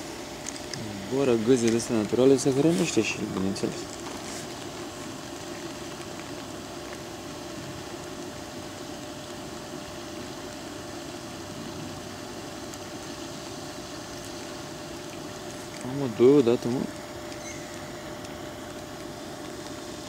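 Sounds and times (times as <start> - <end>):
faint constant whine: 0.0 - 20.0
low mechanical hum: 0.0 - 20.0.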